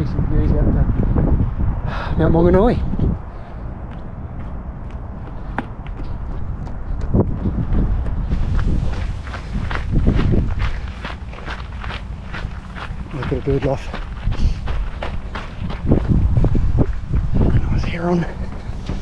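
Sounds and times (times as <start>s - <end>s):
wind on microphone: 0.0s - 19.0s
running footsteps on gravel: 3.8s - 19.0s.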